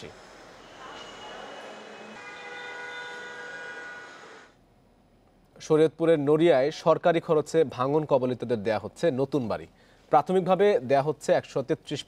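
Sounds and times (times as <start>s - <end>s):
background noise: 0.0s - 12.0s.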